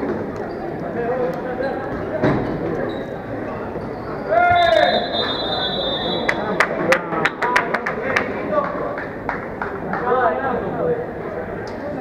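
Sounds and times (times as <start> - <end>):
high whistle-like tone: 4.5 - 6.4.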